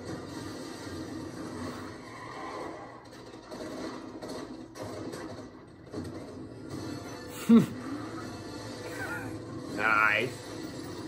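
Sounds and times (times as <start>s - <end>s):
muffled low rumble from tv: 0.0s - 11.0s.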